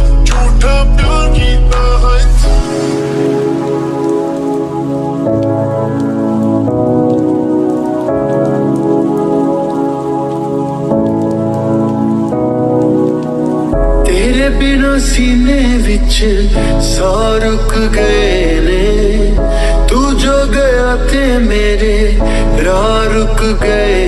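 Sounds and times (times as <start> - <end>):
person singing: 0.0 - 6.1, 13.9 - 24.0
rain on a window: 0.0 - 24.0
slowed reverb-heavy instrumental music: 0.0 - 24.0.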